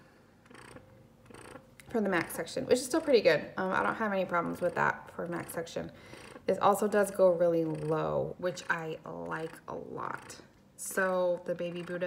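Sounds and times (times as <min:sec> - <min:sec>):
breast pump humming: 0:00.0 - 0:12.0.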